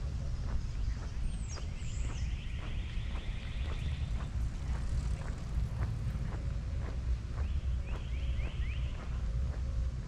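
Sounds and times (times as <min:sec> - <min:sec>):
footsteps on pavement: 0:00.0 - 0:10.0
wind rumble on microphone: 0:00.0 - 0:10.0.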